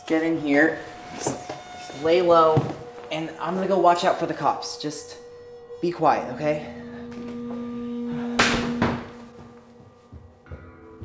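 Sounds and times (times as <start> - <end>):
suspense score held tone: 0.0 - 11.0.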